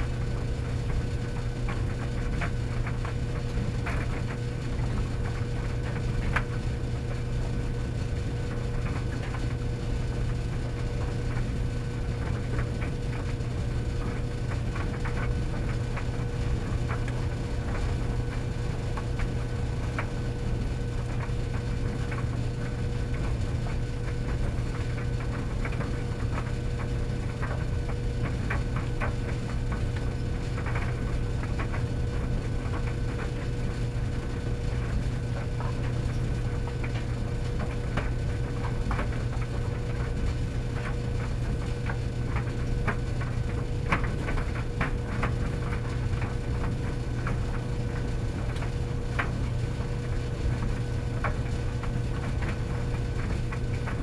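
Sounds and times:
tumble dryers humming: 0:00.0 - 0:54.0.

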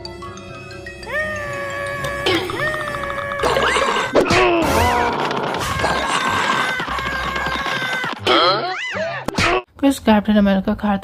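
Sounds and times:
background music: 0:00.0 - 0:09.8
cartoon character whining cries: 0:01.0 - 0:09.3.

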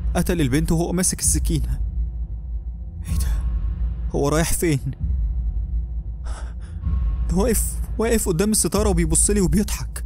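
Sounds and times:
deep background drone: 0:00.0 - 0:10.0
man gasping: 0:06.2 - 0:06.8.

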